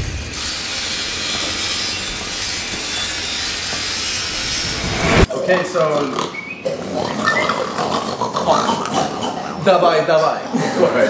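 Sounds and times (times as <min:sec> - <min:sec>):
rasping grinding noise: 0:00.0 - 0:05.3.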